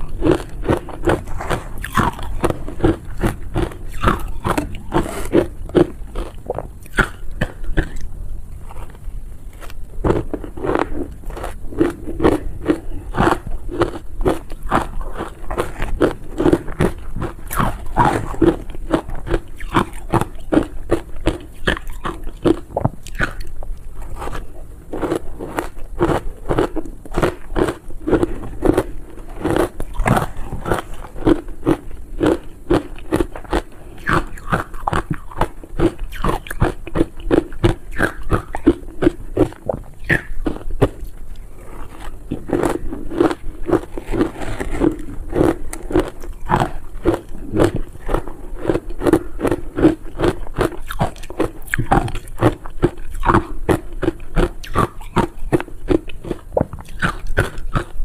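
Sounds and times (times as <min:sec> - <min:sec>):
ice being crunched and chewed: 0:00.0 - 0:58.0.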